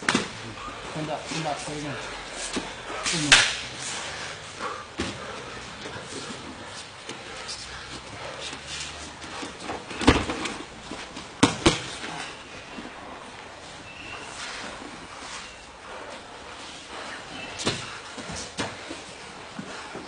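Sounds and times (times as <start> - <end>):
bodies slapping training mat: 0.0 - 13.6, 14.2 - 20.0.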